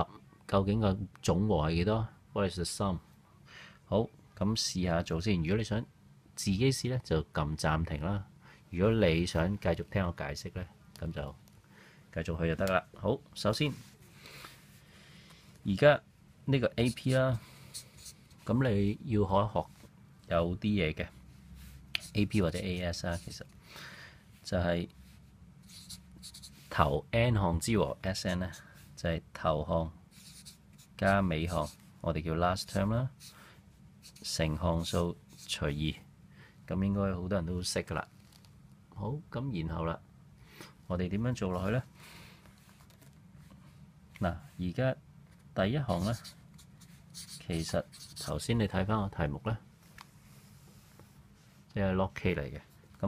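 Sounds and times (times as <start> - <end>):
person speaking: 12.1 - 14.4, 15.6 - 23.6, 24.3 - 36.1, 40.9 - 41.9, 44.2 - 49.6, 51.7 - 53.0
marker scratching on paper: 16.8 - 18.5, 21.6 - 23.4, 25.6 - 26.7, 30.1 - 31.9, 32.6 - 33.4, 34.0 - 35.5, 45.8 - 48.4.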